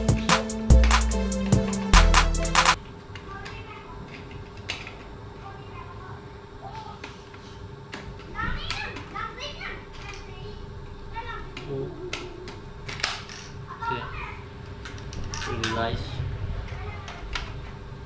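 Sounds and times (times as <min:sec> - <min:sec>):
children's voices: 0:08.3 - 0:12.4, 0:16.6 - 0:17.5.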